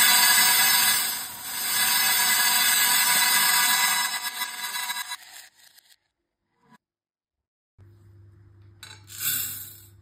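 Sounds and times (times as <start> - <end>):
beads pouring played backwards: 0.0 - 5.9.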